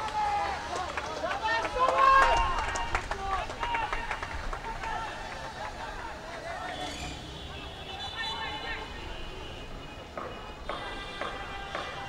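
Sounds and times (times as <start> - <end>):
players shouting: 0.0 - 9.6.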